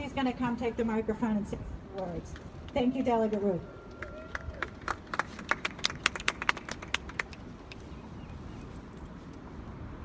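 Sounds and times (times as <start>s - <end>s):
crowd clapping: 3.9s - 7.8s.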